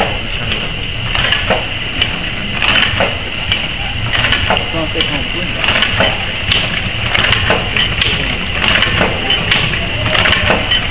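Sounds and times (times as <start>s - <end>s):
machine sharp clicks: 0.0s - 10.9s
packing machine whirring: 0.0s - 10.9s.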